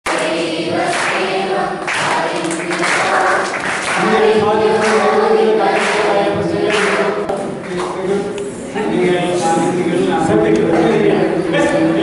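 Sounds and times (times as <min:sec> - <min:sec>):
group of voices singing: 0:00.1 - 0:07.7, 0:09.4 - 0:12.0.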